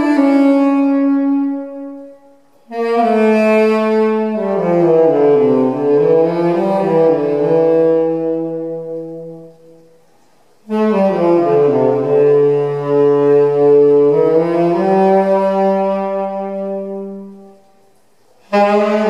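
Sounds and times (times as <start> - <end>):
saxophone playing slow jazz: 0.0 - 19.0.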